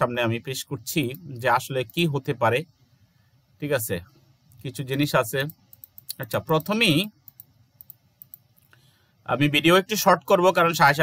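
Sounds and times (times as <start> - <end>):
computer control clicks: 4.5 - 8.7.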